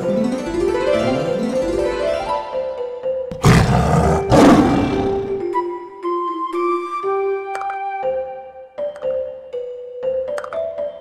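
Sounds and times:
tiger roaring: 3.3 - 5.5.

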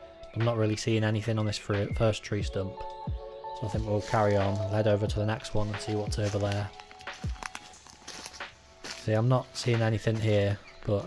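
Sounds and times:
quiet background music: 0.0 - 11.0
footsteps on dry leaves: 3.6 - 11.0.

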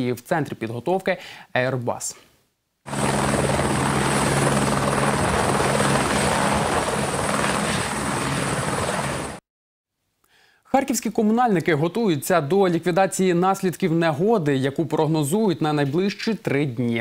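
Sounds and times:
helicopter hovering: 2.9 - 9.4.

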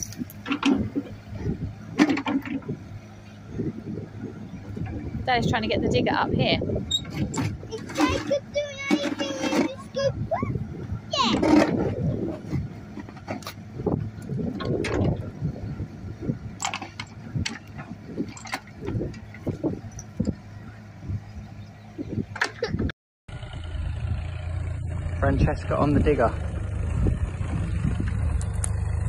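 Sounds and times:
excavator diesel engine running: 0.0 - 29.0.

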